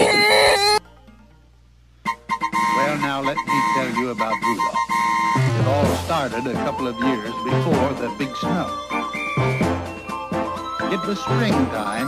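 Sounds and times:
high-pitched cry: 0.0 - 0.8.

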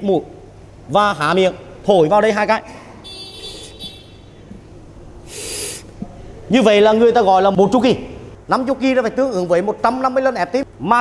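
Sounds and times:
airy rush of breath: 5.2 - 6.4.

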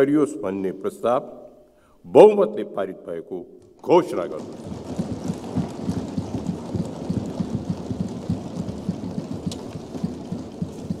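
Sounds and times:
people thumping desks: 3.7 - 11.0.

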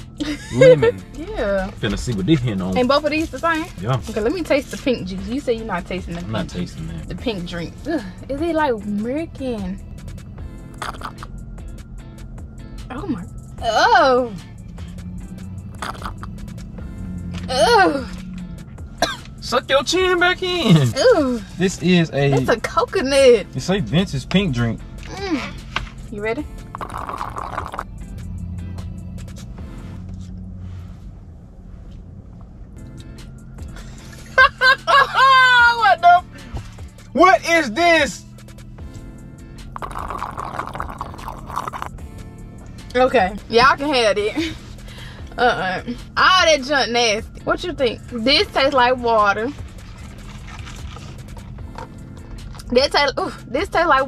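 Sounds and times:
background music with low notes: 0.0 - 54.0
noisy slurp: 10.8 - 11.3, 15.8 - 16.3, 26.8 - 27.8, 39.8 - 42.0
sipping through a straw: 10.8 - 11.3, 15.8 - 16.3, 26.7 - 27.9, 39.7 - 42.0.

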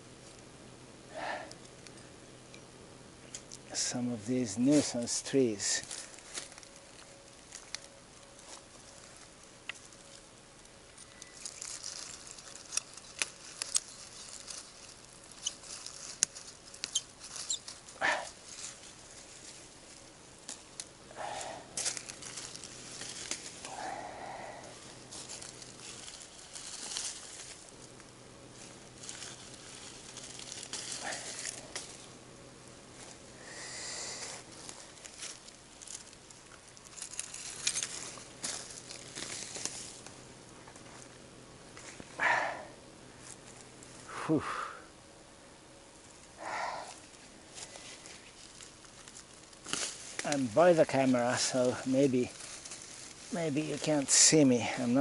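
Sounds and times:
leaves and stems rustling: 3.2 - 44.4, 45.8 - 55.0
stems snapping: 5.8 - 9.0, 9.6 - 17.9, 20.4 - 32.2, 34.2 - 41.2, 46.9 - 54.0.

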